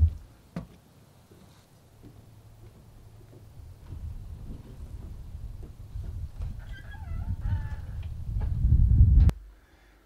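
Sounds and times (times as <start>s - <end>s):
low gusty rumble: 0.0s - 0.3s, 2.9s - 9.4s.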